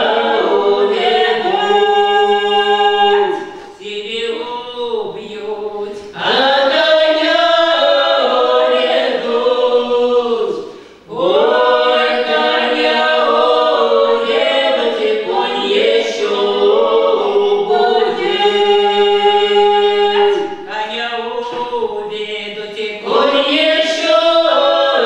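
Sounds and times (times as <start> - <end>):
group singing a cappella: 0.0 - 25.0.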